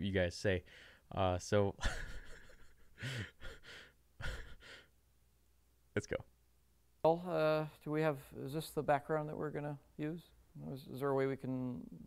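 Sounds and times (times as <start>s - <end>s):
man laughing quietly: 1.8s - 4.9s.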